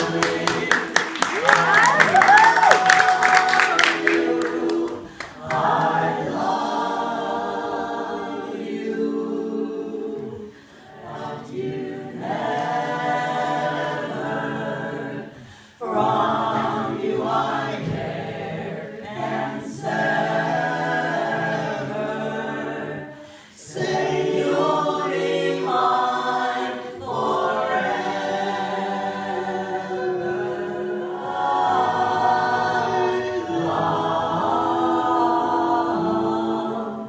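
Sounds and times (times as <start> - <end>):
a cappella group singing in harmony: 0.0 - 37.0.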